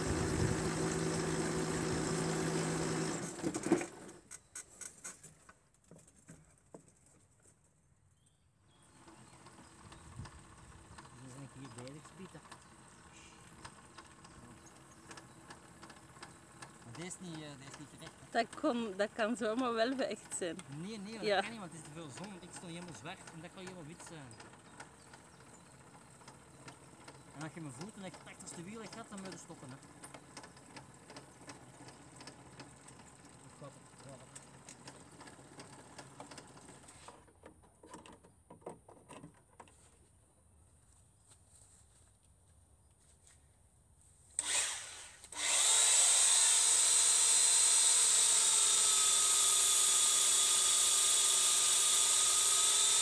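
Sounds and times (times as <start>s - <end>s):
faint motor hum: 0.0s - 3.4s, 8.7s - 37.1s, 44.4s - 53.0s.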